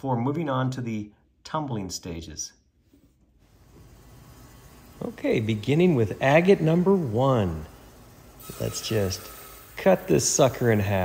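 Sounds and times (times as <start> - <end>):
trim saw hissing: 3.5 - 11.0.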